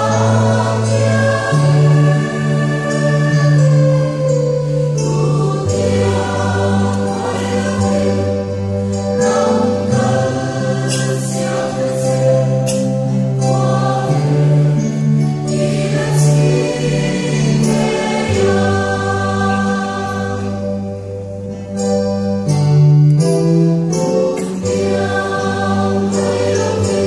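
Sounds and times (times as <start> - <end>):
mixed choir singing: 0.0 - 21.0, 24.4 - 27.0.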